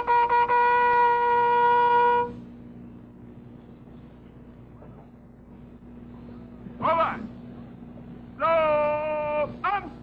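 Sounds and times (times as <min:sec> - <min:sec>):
loud steady horn note: 0:00.0 - 0:02.7
faint hum and hiss: 0:00.0 - 0:10.0.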